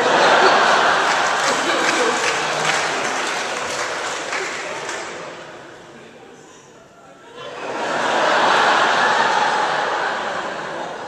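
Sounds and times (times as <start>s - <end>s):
audience laughter: 0.0s - 5.5s, 7.3s - 11.0s
audience applause: 0.0s - 5.6s.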